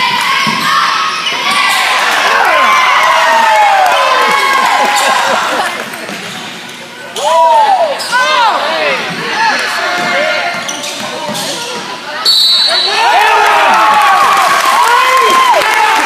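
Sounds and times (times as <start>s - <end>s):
spectators' voices echoing: 0.0s - 16.0s
sneakers squeaking: 7.9s - 13.0s.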